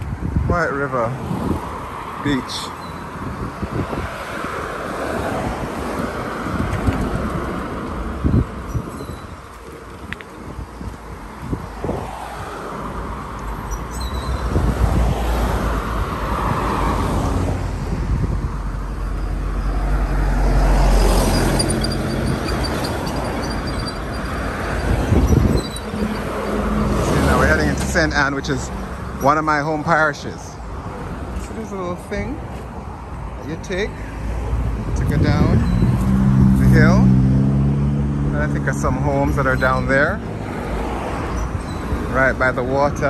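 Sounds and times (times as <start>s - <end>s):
cars and van driving past: 0.1s - 43.0s.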